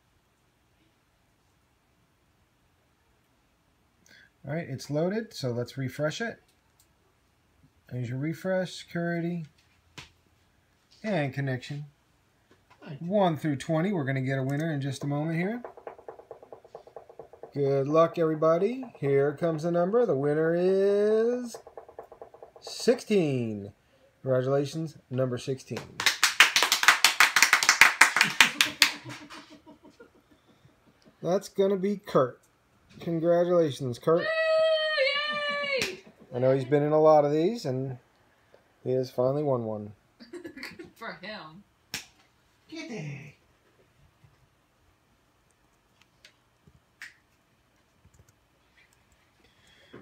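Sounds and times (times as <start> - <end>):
hand clapping: 25.7 - 29.5, 35.4 - 36.3.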